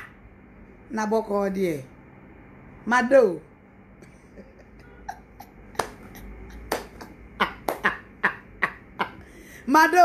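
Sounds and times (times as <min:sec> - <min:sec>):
woman laughing: 0:04.0 - 0:09.5.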